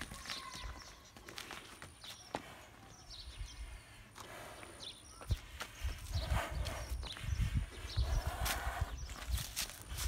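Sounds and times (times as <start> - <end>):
hooves stepping on dirt: 0.0 - 10.0.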